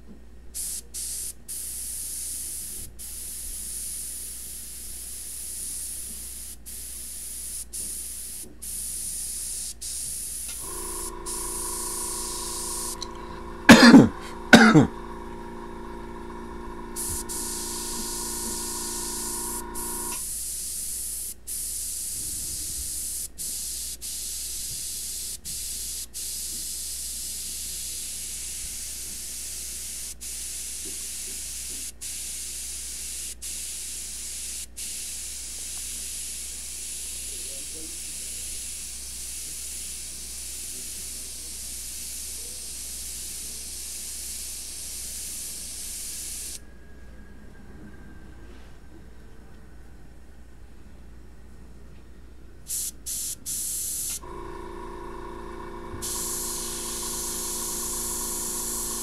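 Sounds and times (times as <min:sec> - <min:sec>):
airbrush spraying hiss: 0:00.6 - 0:46.6, 0:52.7 - 0:54.4, 0:55.8 - 0:59.0
multi-tone hum: 0:10.5 - 0:20.2, 0:54.2 - 0:59.0.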